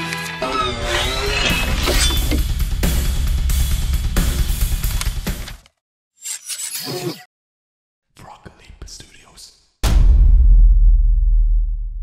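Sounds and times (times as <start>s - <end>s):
person whispering: 8.1s - 9.6s
deep booming rumbling hit: 9.8s - 12.0s.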